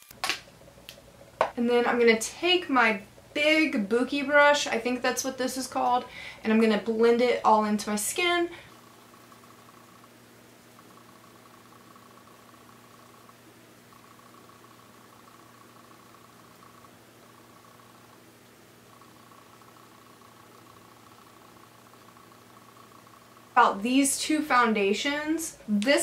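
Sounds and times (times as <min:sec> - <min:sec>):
low electrical hum: 0:00.0 - 0:26.0
faint high whine: 0:01.4 - 0:26.0.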